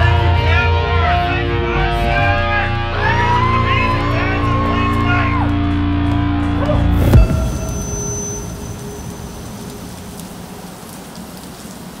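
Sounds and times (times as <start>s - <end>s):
cymbals and amplifiers crash: 7.0s - 10.1s
faint high ringing tone: 7.2s - 10.4s.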